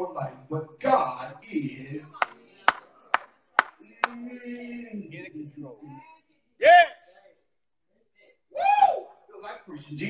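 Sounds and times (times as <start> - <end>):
sharp percussive hits: 2.2 - 3.8.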